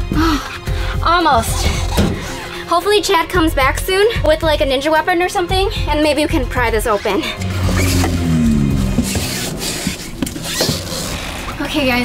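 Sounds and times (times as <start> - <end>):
background music: 0.0 - 12.0
low tone sliding downward: 7.4 - 10.4.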